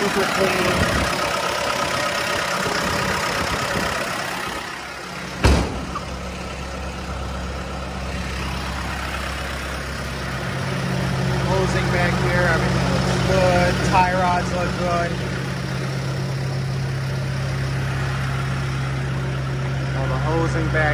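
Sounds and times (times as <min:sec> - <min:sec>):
diesel engine idling: 0:00.0 - 0:20.9
sharp thump: 0:05.4 - 0:06.0.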